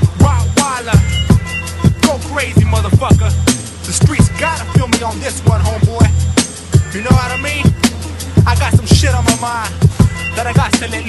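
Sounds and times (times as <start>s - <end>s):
hip hop beat with heavy bass: 0.0s - 11.0s
vocals over a beat: 0.0s - 11.0s.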